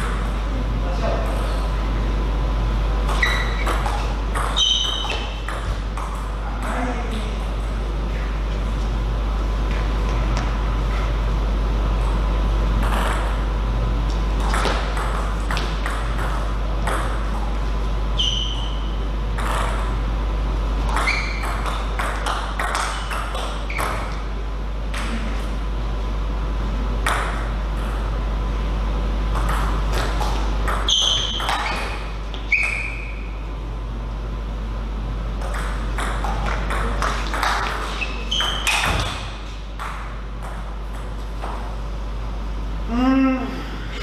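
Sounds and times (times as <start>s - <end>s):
steady low hum: 0.0s - 44.0s
short high squeaks: 3.1s - 3.8s, 4.6s - 5.4s, 18.2s - 18.9s, 21.0s - 21.6s, 30.9s - 33.2s, 37.9s - 39.2s.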